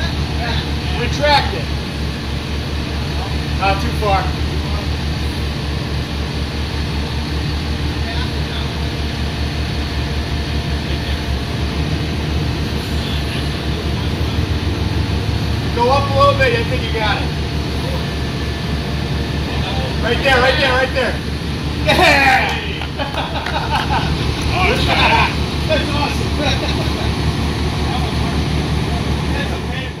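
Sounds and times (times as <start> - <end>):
diesel engine rumble: 0.0 - 30.0.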